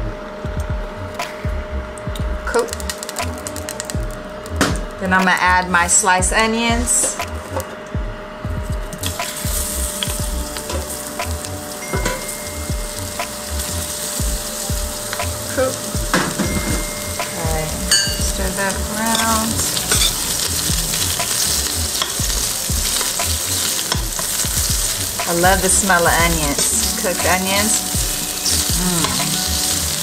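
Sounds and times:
onions sizzling in oil: 2.5s - 4.6s, 8.9s - 30.0s.

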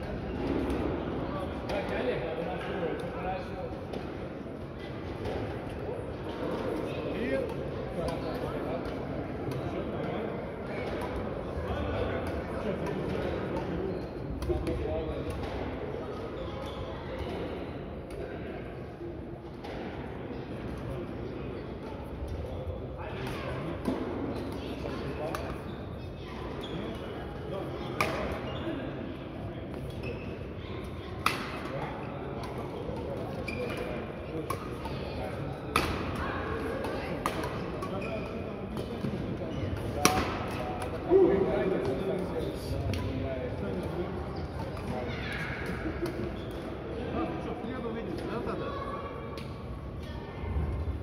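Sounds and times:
background voices and chatter: 0.0s - 51.0s
badminton racket hitting shuttlecock: 40.0s - 40.6s.

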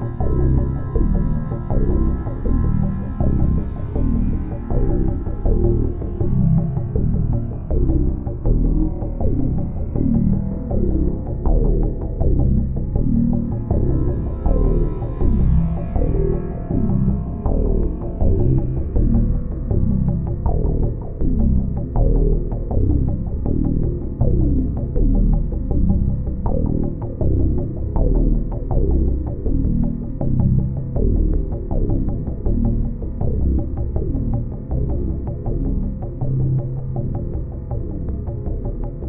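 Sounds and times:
low throbbing synth drone: 0.0s - 39.0s.

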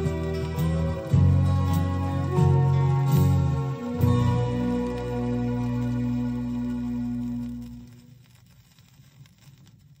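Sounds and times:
song from vinyl record: 0.0s - 10.0s
vinyl record crackles and clicks: 0.0s - 10.0s.

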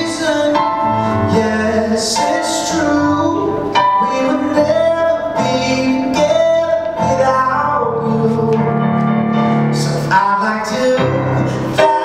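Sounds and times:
keyboard chords: 0.0s - 12.0s
man singing: 0.0s - 12.0s.

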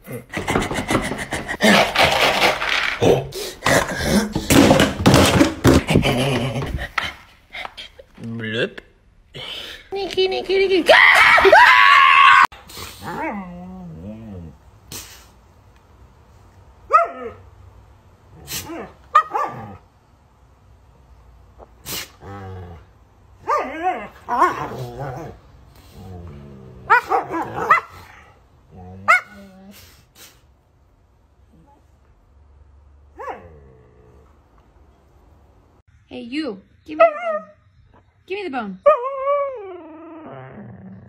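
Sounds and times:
small dog barking high-pitched: 16.9s - 17.4s, 19.1s - 19.6s
dog whining and yowling: 38.8s - 41.0s.

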